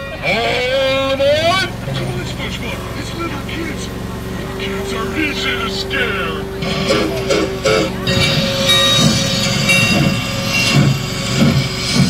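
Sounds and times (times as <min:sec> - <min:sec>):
ride train humming: 0:00.0 - 0:12.0
scattered voices: 0:00.0 - 0:12.0
high rising cry: 0:00.4 - 0:12.0.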